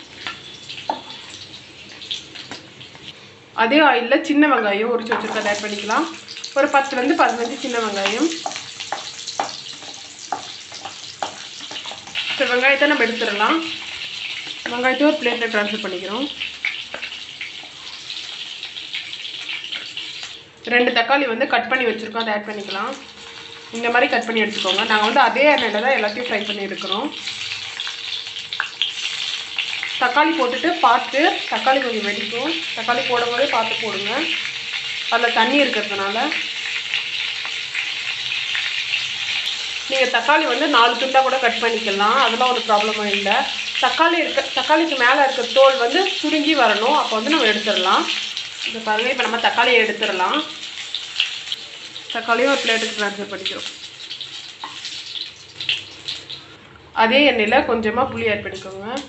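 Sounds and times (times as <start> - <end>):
shallots sizzling in hot oil: 0.0 - 57.6
person speaking: 57.0 - 59.0.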